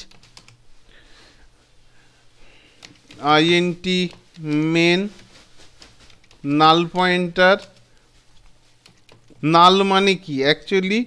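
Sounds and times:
faint keyboard keystrokes: 2.8 - 3.2, 5.2 - 6.5, 7.5 - 9.4.

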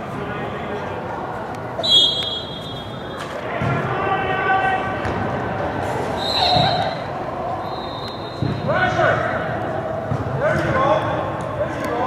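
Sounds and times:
voices calling out echoing: 0.0 - 12.0
high whistle-like tones: 1.8 - 3.1, 6.2 - 7.0, 7.6 - 8.6.

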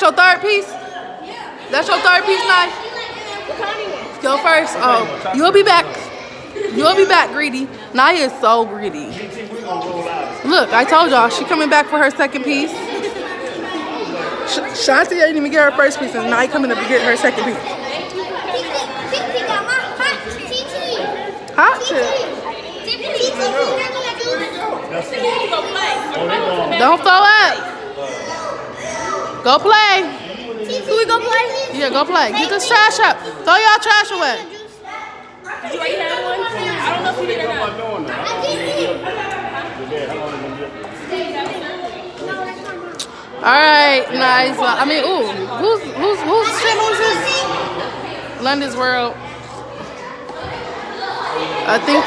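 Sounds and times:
indistinct chatter of voices: 0.0 - 52.0.

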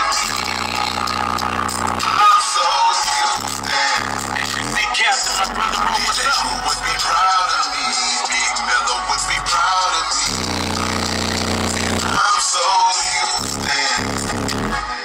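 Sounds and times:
rap over hip-hop beat on car stereo: 0.0 - 15.0
deep bass note: 0.3 - 2.1, 10.3 - 12.2, 13.4 - 14.8.

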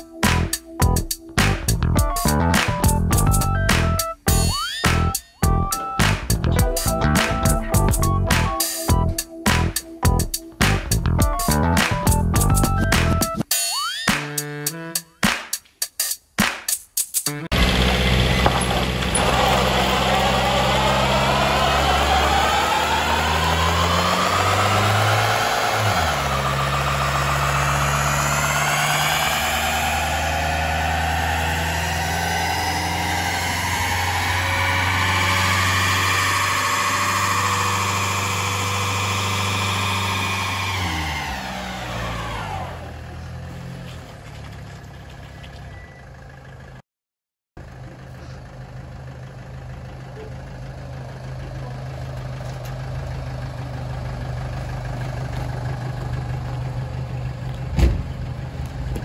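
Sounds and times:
diesel engine revving: 0.0 - 13.4, 17.4 - 46.8, 47.6 - 59.0.

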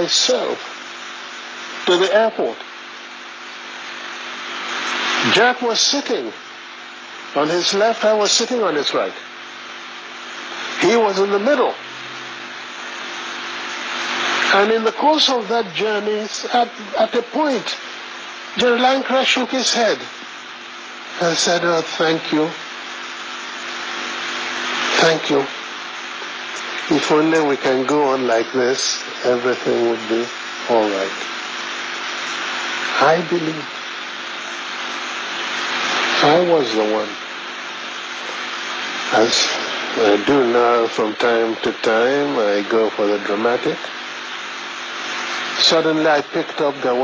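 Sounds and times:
rushing hiss of recording noise: 0.0 - 47.0.

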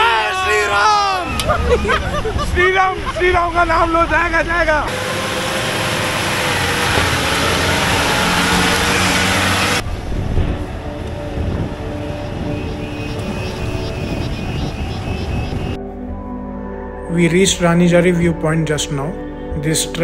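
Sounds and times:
jeep engine running: 0.9 - 15.8
tyres working through mud: 1.2 - 15.8.

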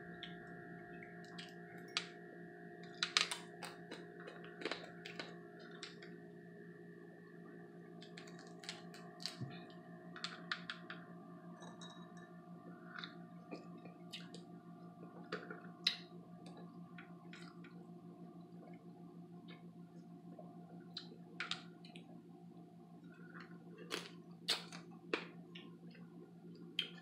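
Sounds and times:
steady low hum: 0.0 - 27.0
crab shells cracking while eating: 2.9 - 6.1, 8.0 - 9.4, 23.8 - 25.7.

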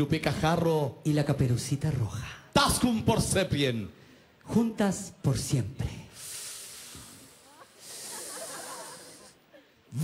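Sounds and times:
faint airy hiss: 5.8 - 10.0.

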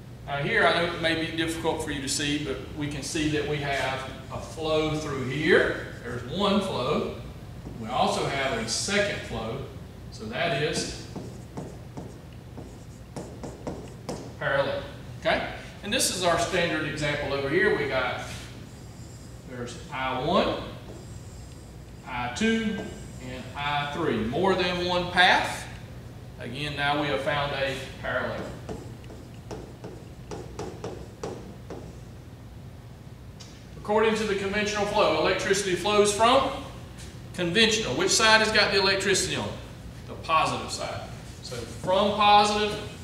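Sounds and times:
low room hum: 0.0 - 43.0
taps and strokes on touchscreen: 11.1 - 14.4, 28.7 - 32.0.

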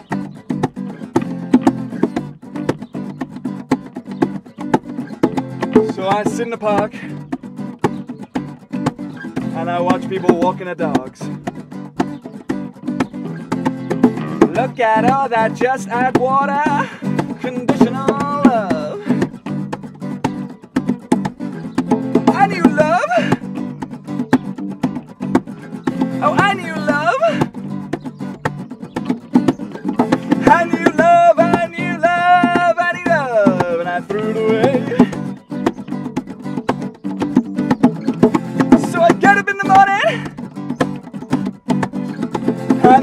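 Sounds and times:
acoustic guitars: 0.0 - 43.0
person singing: 14.1 - 19.4, 22.2 - 23.5, 26.2 - 27.6, 30.2 - 35.4, 38.7 - 40.5, 42.7 - 43.0.

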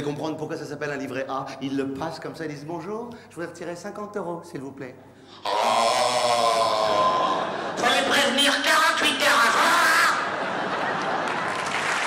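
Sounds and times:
man crying out oh: 5.4 - 7.4.

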